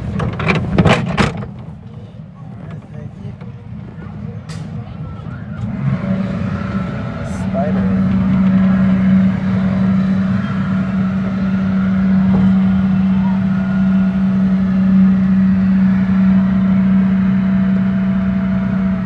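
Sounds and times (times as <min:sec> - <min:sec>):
ride machinery humming: 0:00.0 - 0:19.0.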